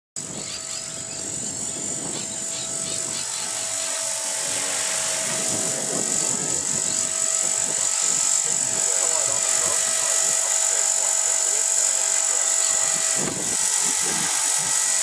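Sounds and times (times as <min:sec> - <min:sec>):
rc helicopter whine: 0:00.2 - 0:15.0
rotors buzzing: 0:00.2 - 0:15.0.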